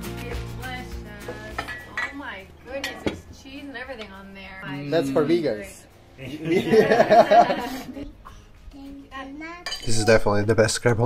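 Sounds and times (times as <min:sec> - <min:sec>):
metal spoon clinking on ceramic platter: 0:09.6 - 0:10.0.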